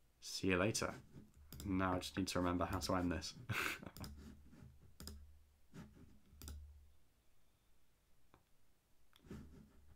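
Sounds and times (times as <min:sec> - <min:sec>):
faint computer clicks: 0:01.5 - 0:01.9.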